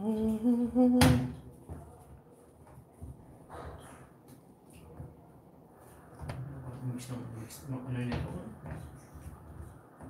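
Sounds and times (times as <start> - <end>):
person humming: 0.0 - 1.2.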